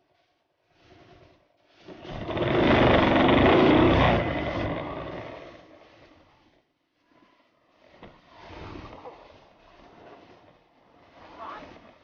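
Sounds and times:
moped engine running: 0:02.1 - 0:05.5.

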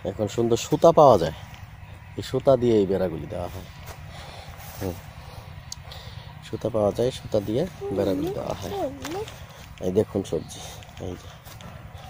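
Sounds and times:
child making swooping vocal sounds: 0:07.8 - 0:09.4.

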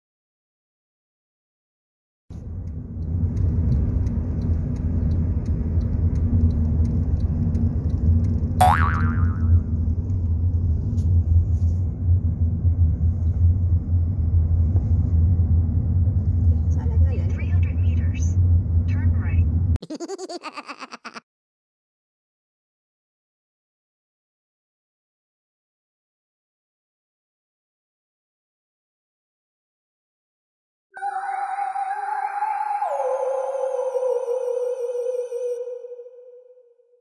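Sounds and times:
car engine and tyres rumbling: 0:02.3 - 0:19.8
springy boing sound effect: 0:08.6 - 0:09.6.

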